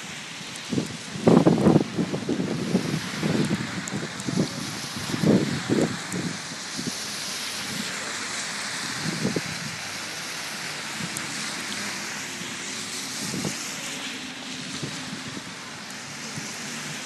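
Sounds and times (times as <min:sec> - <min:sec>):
vehicles passing slowly: 0:00.0 - 0:17.0.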